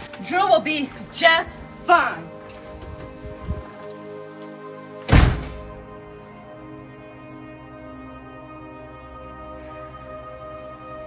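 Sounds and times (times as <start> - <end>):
soft background music: 0.0 - 11.0
front door slamming shut: 5.0 - 5.8.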